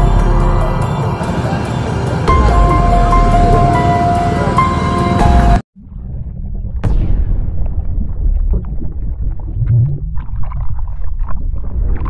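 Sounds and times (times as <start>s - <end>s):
deep rumble: 0.0s - 12.0s.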